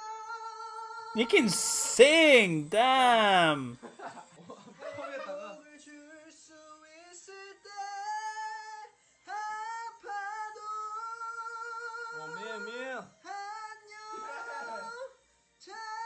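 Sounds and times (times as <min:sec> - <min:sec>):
man singing unaccompanied: 0:01.2 - 0:03.8.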